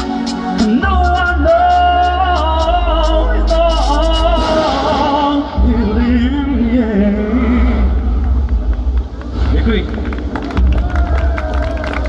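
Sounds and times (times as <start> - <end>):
amplified music over pa: 0.0 - 10.8
steady low rumble: 0.8 - 12.0.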